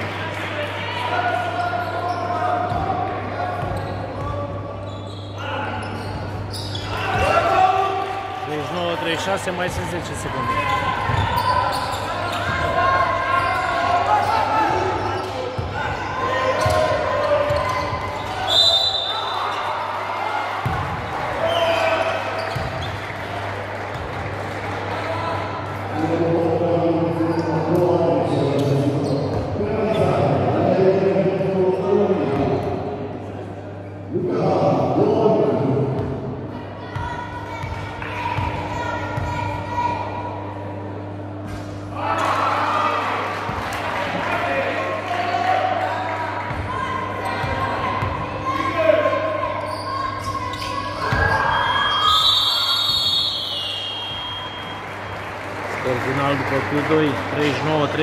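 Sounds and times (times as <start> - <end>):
voices of players and spectators: 0.0 - 58.0.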